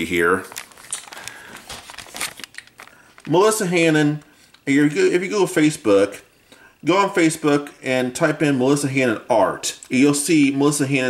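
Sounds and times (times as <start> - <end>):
paper crinkling and rustling: 0.0 - 4.6.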